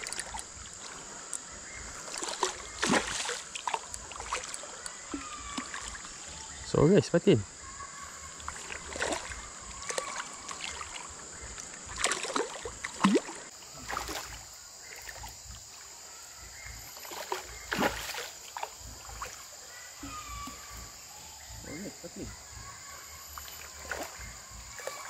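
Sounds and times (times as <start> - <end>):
fish splashing at water surface: 1.9 - 6.2, 8.4 - 15.3, 17.0 - 19.5.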